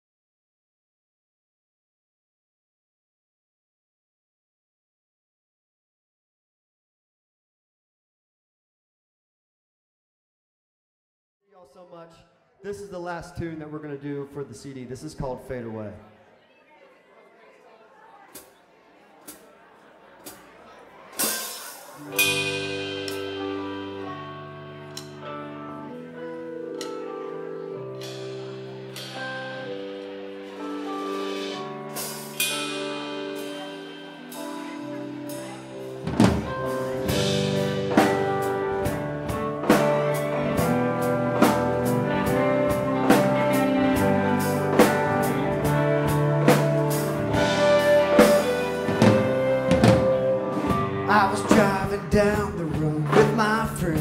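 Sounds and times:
drum kit steady beat: 21.2 - 24.0, 30.4 - 54.0
electric guitars: 21.2 - 54.0
cymbal crashes: 21.3 - 23.9
sustained guitar chords: 22.0 - 54.0.

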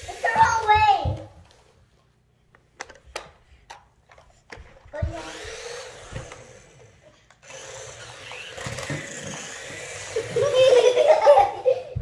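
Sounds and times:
young child laughing: 10.0 - 12.0.

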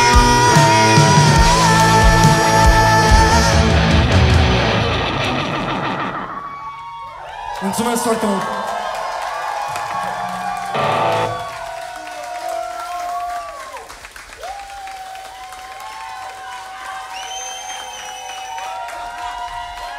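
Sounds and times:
loud guitar chord: 0.0 - 6.3, 10.4 - 11.6
electric guitars ringing: 0.0 - 6.6, 9.8 - 11.7
guitar feedback tones: 0.0 - 6.6, 9.8 - 11.8.

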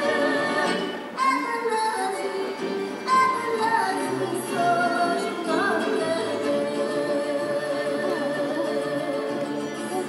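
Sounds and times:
high voice singing: 0.0 - 10.0.

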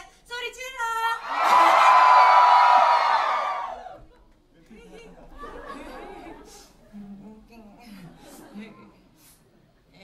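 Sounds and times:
audience cheering and shouting: 1.2 - 4.1.

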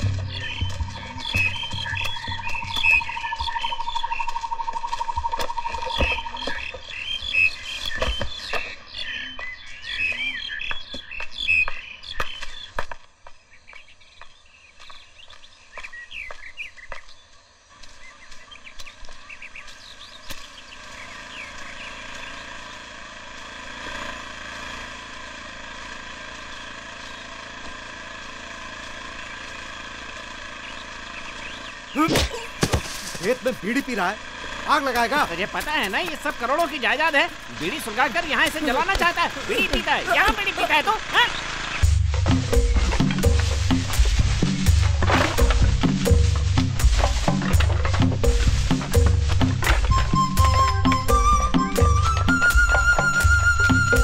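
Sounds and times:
sharp knocks: 0.0 - 3.6
bird-like chirps: 0.0 - 12.8, 30.5 - 32.1.

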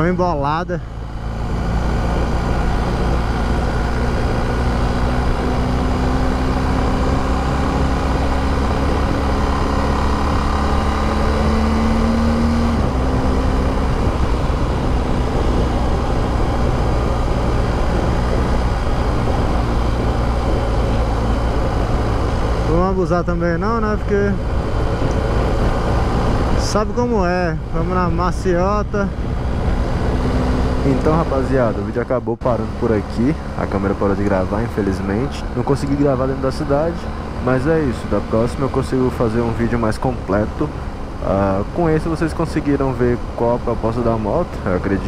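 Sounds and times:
motorcycle engine: 0.0 - 45.0
wind rumble on microphone: 1.4 - 22.8, 23.4 - 31.8.

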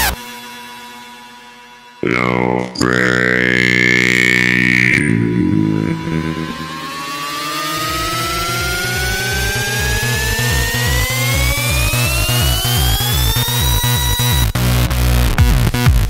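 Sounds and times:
held synth chord: 2.0 - 11.1
rising synth sweep: 2.0 - 12.6.

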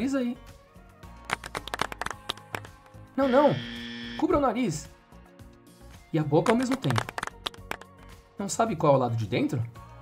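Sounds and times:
background music with held tones: 0.0 - 10.0
quick irregular clicks and taps: 1.2 - 2.9, 6.4 - 7.9.

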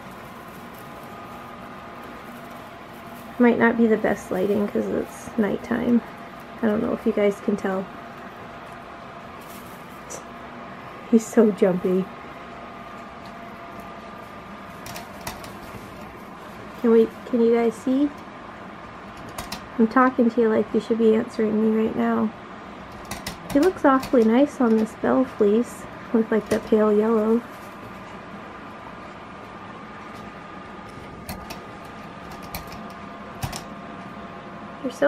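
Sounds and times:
room noise hiss: 0.0 - 35.0.

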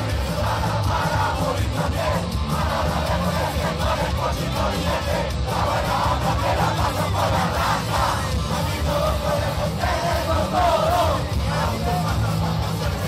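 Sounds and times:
crowd shouting and chanting: 0.0 - 13.0
punk band playing live: 0.0 - 13.0.

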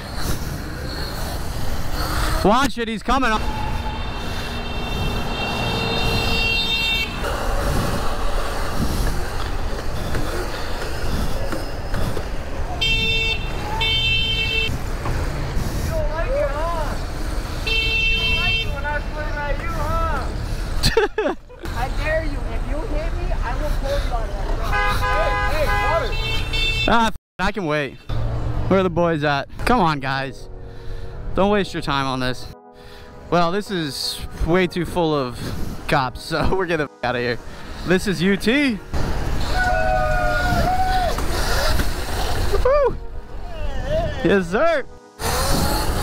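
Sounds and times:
vehicle horn honking: 3.6 - 7.4, 12.8 - 14.8, 17.6 - 18.9, 24.6 - 27.1.

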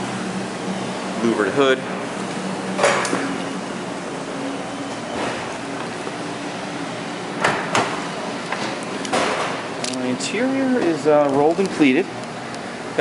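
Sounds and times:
air conditioning hum: 0.0 - 13.0.

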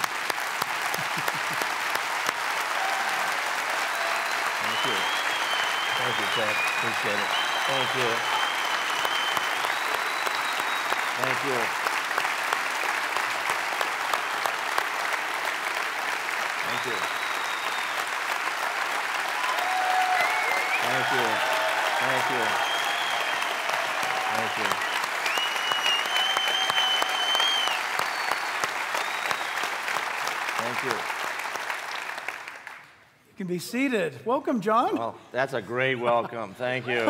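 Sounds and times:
audience clapping: 0.0 - 33.1
shouted cheers: 2.6 - 11.7, 16.6 - 29.6
high whistles: 4.1 - 11.4, 16.7 - 18.1, 20.2 - 21.4, 22.0 - 29.8.

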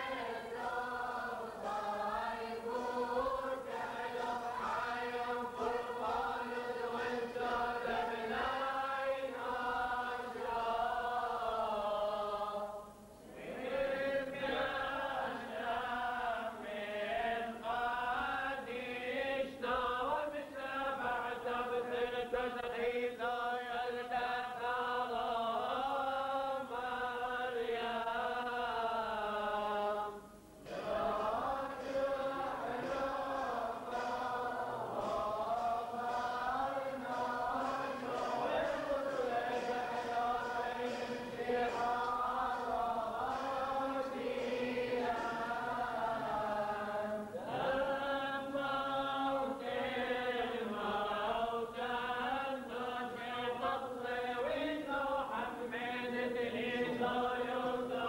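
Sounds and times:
men chanting a hymn: 0.0 - 58.0.

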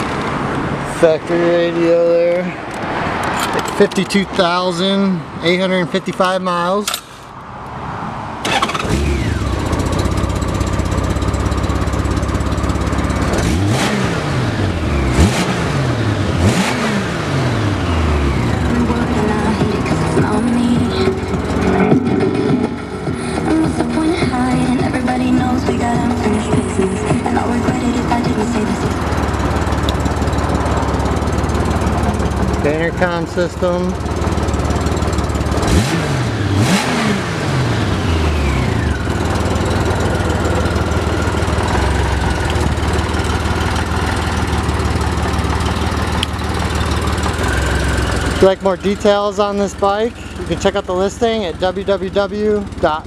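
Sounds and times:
engine revving: 8.4 - 53.0
motorcycle engine starting: 8.4 - 53.0
motorcycle engine idling: 8.5 - 16.5, 17.2 - 36.7, 37.4 - 53.0.

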